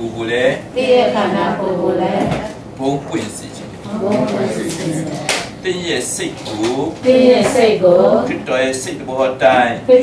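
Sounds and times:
man lecturing: 0:02.8 - 0:03.8, 0:05.6 - 0:07.0, 0:08.3 - 0:09.8.

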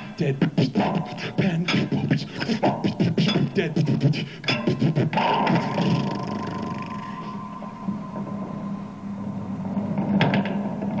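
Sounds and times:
processed vocal noise: 0:00.0 - 0:07.8
steady high tone: 0:00.0 - 0:10.2
electronic drone: 0:00.0 - 0:11.0
low hum: 0:00.0 - 0:11.0.

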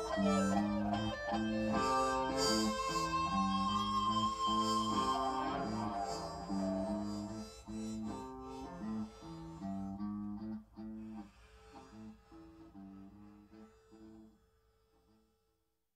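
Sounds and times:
plucked guitar notes: 0:00.0 - 0:14.3.

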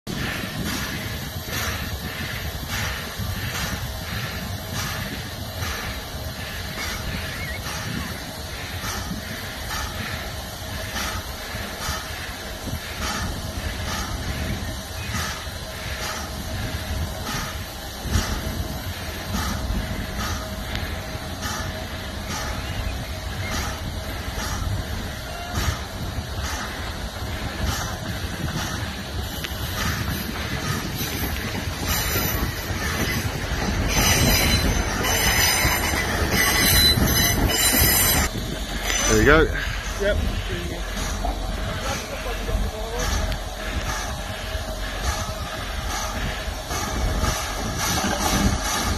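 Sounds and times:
steam locomotive chuffing and hissing: 0:00.0 - 0:48.9.

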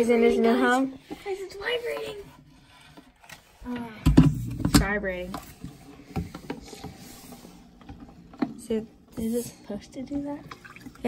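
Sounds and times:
aquarium filter buzzing: 0:06.1 - 0:11.0.

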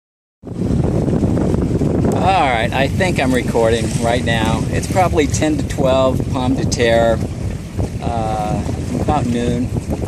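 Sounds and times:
wind buffeting microphone: 0:00.4 - 0:10.0.

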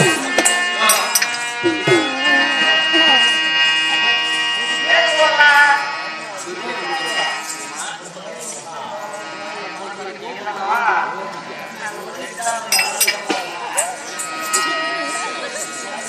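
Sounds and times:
person singing: 0:00.0 - 0:05.9
reed organ drone: 0:00.0 - 0:16.0.

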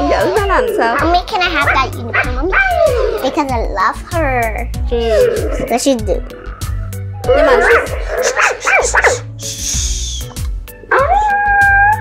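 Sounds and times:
toy puppy howl: 0:07.2 - 0:07.9, 0:10.9 - 0:12.0.

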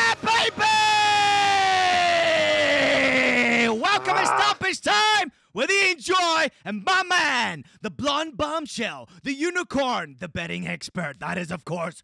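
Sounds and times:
man yelling war cry: 0:00.0 - 0:07.5.

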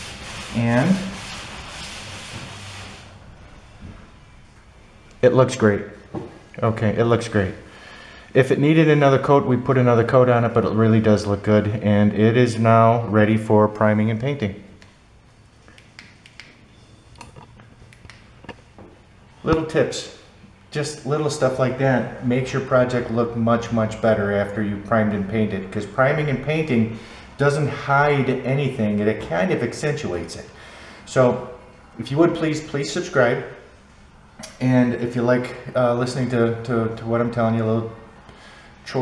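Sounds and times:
damp rag wiping drywall: 0:00.0 - 0:03.7.

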